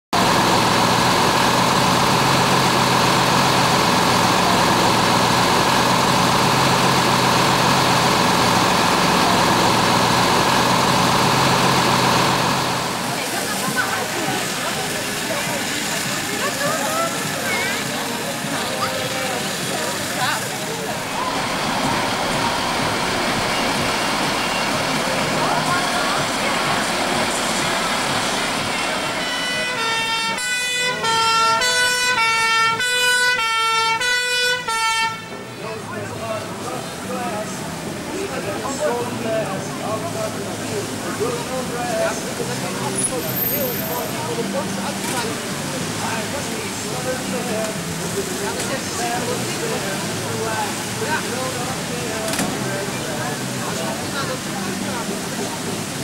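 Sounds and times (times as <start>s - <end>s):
fire engine running loudly: 0.1s - 56.0s
voices in background: 7.1s - 34.0s, 34.6s - 56.0s.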